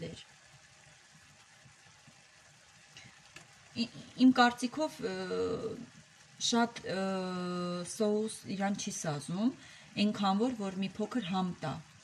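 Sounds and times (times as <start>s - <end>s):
vegetables sizzling in a frying pan: 0.0s - 12.0s.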